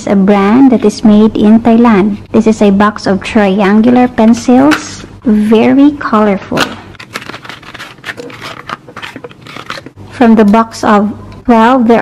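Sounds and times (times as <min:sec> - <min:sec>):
pencil box being handled: 0:06.9 - 0:09.9.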